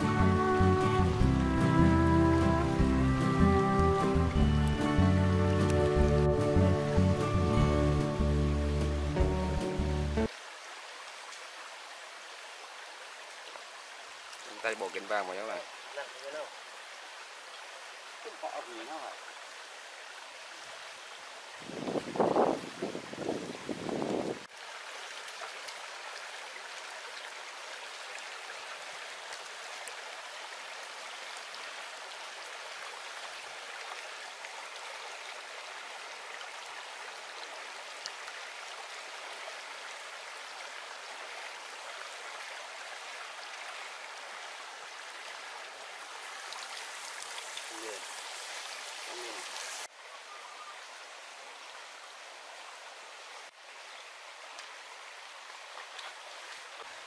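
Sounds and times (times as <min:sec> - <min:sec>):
stream running over rocks: 0:00.0 - 0:57.0.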